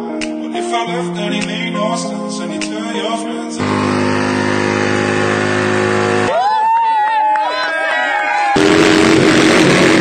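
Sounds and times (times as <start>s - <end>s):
sung music track: 0.0s - 4.0s
steady held tone: 3.6s - 6.3s, 8.6s - 10.0s
crowd cheering: 4.4s - 10.0s.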